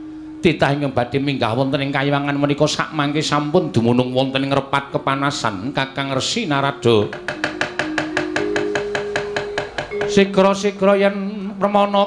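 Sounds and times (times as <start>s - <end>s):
held instrument notes: 0.0s - 11.5s
wooden mallet knocking on chest: 7.1s - 10.3s.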